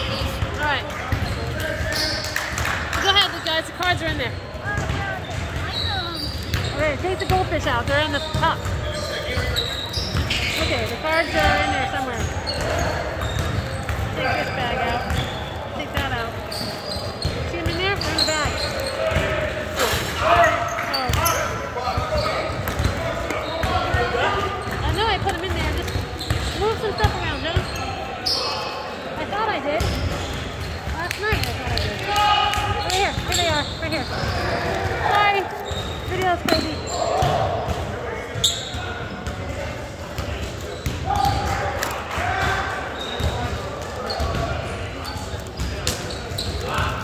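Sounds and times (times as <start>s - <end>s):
sneaker squeaks: 0.0s - 47.0s.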